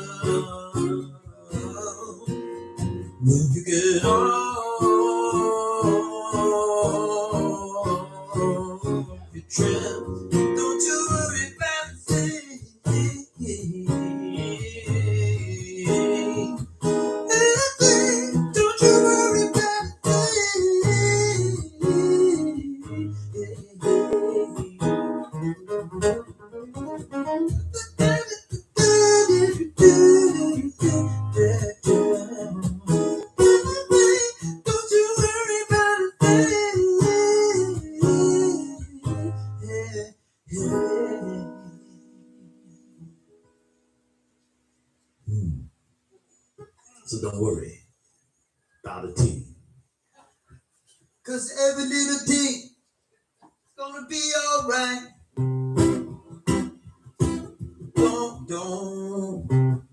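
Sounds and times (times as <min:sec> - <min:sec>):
acoustic guitar strumming: 0:00.0 - 0:44.5, 0:53.8 - 0:59.9.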